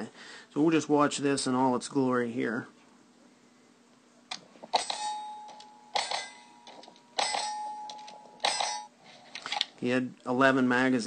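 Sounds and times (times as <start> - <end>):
steel plate ringing: 4.8 - 9.0.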